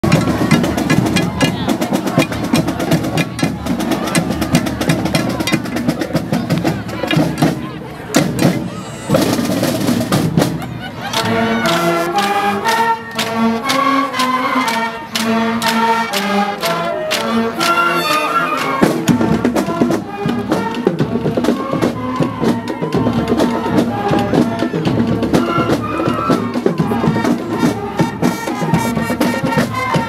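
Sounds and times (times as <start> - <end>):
wind and brass melody: 0.0 - 7.8, 8.4 - 30.0
drumline cadence: 0.0 - 30.0.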